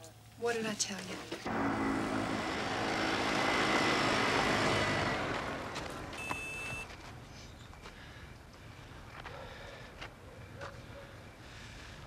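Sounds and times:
small motor vehicle running: 1.5s - 6.9s.

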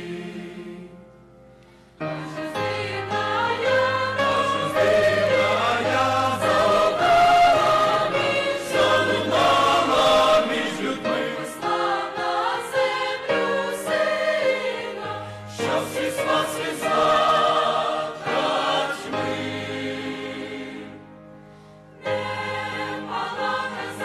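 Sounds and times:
choir singing a hymn: 0.0s - 1.2s, 1.8s - 24.0s.

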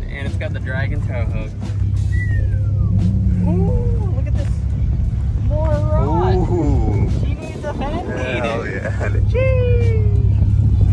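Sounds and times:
steady low rumble: 0.0s - 10.9s
people's voices: 0.2s - 10.7s
falling whistle-like tone: 2.1s - 3.4s.

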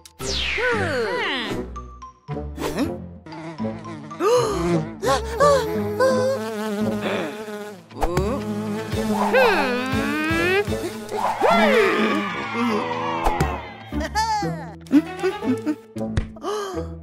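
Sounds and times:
cartoon bee buzzing: 2.6s - 12.3s.

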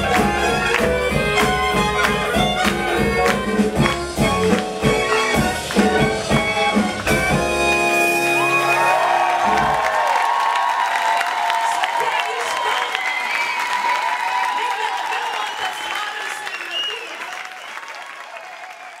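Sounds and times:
audience applause: 0.0s - 7.3s, 8.4s - 19.0s
audience cheers and whoops: 8.2s - 19.0s.

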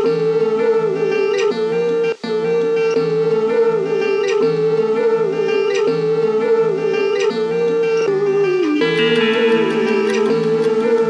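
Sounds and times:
held wavering melody line: 0.0s - 11.0s
plucked strings: 8.8s - 11.0s.

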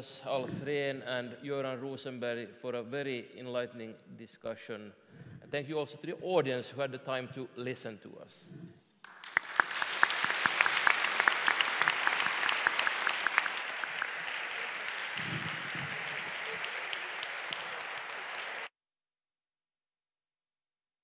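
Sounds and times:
audience applauding: 9.0s - 18.7s.

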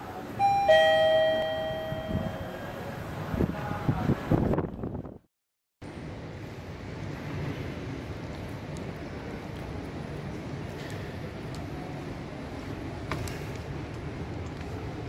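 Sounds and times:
elevator chime: 0.4s - 3.0s.

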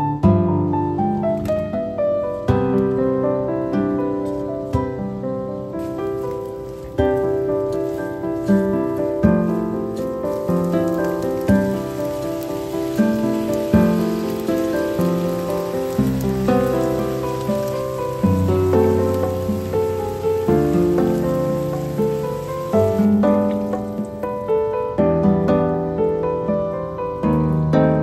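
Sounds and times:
background piano music: 0.0s - 28.0s
vegetables sizzling in a pan: 5.5s - 24.7s.

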